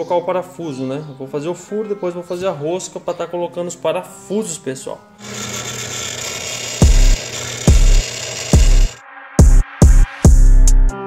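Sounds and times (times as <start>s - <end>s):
drill press whirring: 5.2s - 9.0s
electronic music with bass kick: 9.4s - 11.0s.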